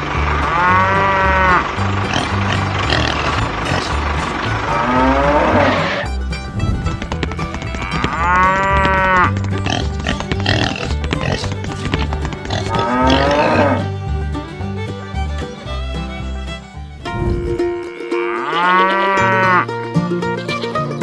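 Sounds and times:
farm animal calls: 0:00.0 - 0:13.9, 0:14.8 - 0:19.7
background music with bass line: 0:00.0 - 0:21.0.

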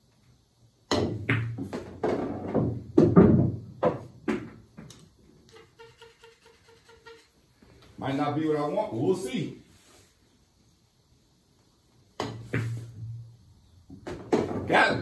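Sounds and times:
balls knocking cushions: 0:00.9 - 0:04.9
pool balls clacking: 0:00.9 - 0:05.0, 0:13.9 - 0:15.0.

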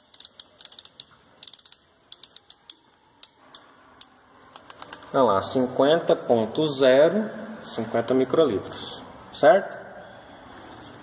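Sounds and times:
pipette knob ratchet clicks: 0:00.0 - 0:03.6.

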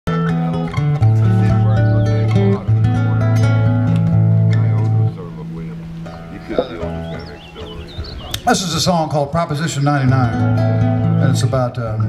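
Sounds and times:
nylon-string guitar playing: 0:00.1 - 0:12.0.

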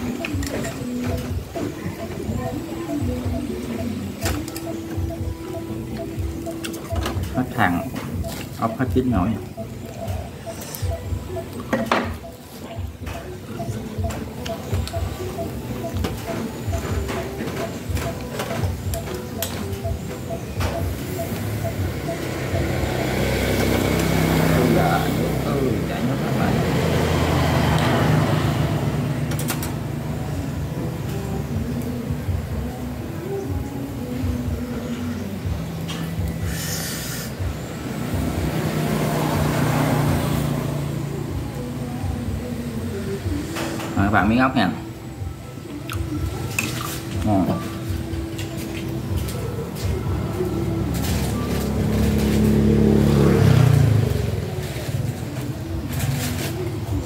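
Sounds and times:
heavy vehicle engines passing: 0:18.8 - 0:32.7, 0:35.0 - 0:44.0, 0:44.8 - 0:57.0.

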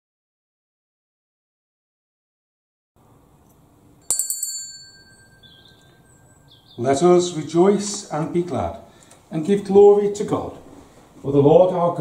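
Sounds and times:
small bell ringing: 0:04.0 - 0:06.8.

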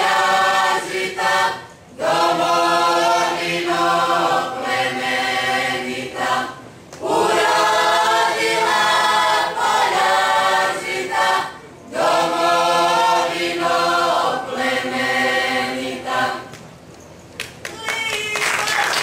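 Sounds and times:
men and women singing: 0:00.0 - 0:16.6.

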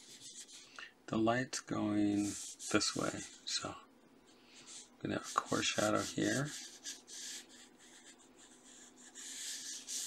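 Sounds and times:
pencil scratching on paper: 0:00.0 - 0:00.7, 0:02.1 - 0:03.4, 0:04.6 - 0:10.0.

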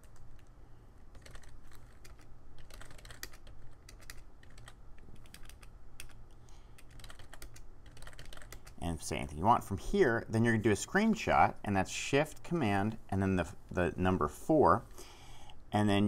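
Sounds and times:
computer keyboard typing: 0:00.0 - 0:00.5, 0:01.1 - 0:08.8
steady low hum: 0:00.0 - 0:16.0.

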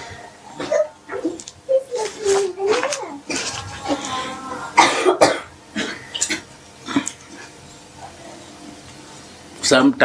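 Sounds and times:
man coughing: 0:04.8 - 0:07.1.

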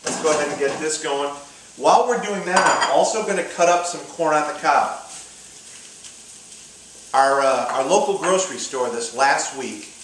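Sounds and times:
food frying in oil: 0:00.0 - 0:10.0.

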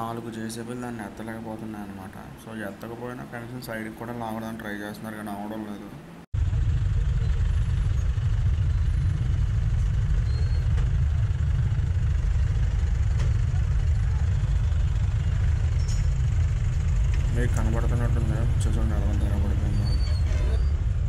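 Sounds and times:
motorcycle engine rumbling: 0:06.4 - 0:21.0.

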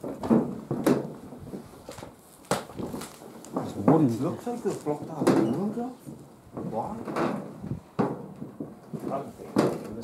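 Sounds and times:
knocks and scuffs on metal roof: 0:00.0 - 0:04.2, 0:05.1 - 0:10.0.

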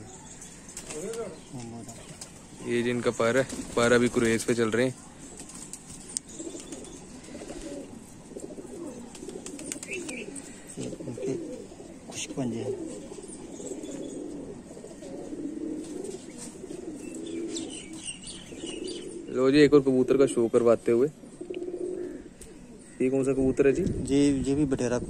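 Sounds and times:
pigeons cooing: 0:00.0 - 0:24.3
bird chirps: 0:05.9 - 0:07.4, 0:12.8 - 0:14.4, 0:16.9 - 0:19.3.

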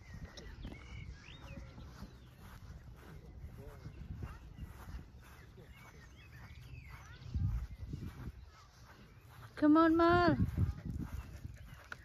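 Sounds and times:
faint high chirps: 0:00.0 - 0:09.5
wind rumbling on microphone: 0:00.0 - 0:12.0.

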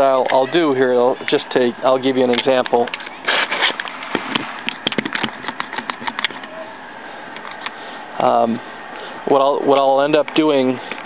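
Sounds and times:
rustle or scrape on table: 0:03.2 - 0:03.8.

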